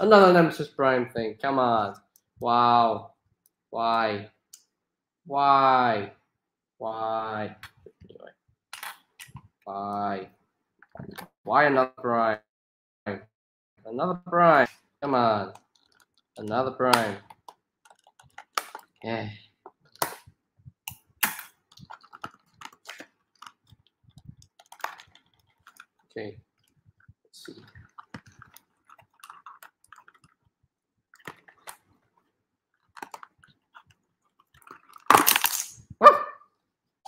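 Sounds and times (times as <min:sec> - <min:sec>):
packaging rustling and clicking: 0:15.5 - 0:19.0, 0:21.0 - 0:30.5, 0:31.2 - 0:35.8
plastic toy clicking: 0:15.5 - 0:19.0
cardboard packaging handled: 0:21.7 - 0:26.1.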